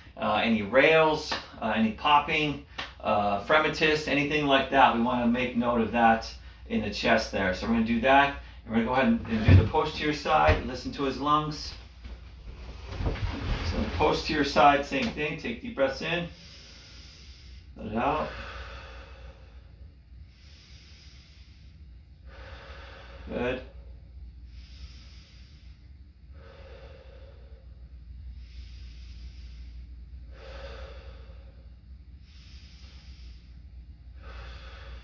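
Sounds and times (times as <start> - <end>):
man breathing deeply: 6.3 - 6.7, 8.4 - 8.7, 16.2 - 35.0.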